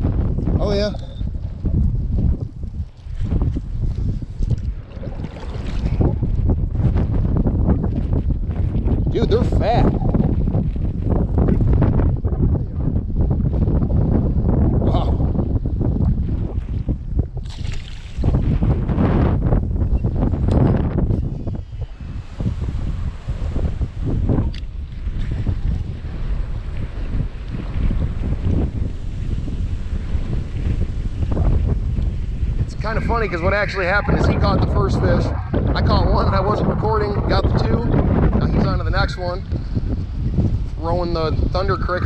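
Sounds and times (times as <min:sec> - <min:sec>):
wind buffeting microphone: 0:00.0 - 0:42.0.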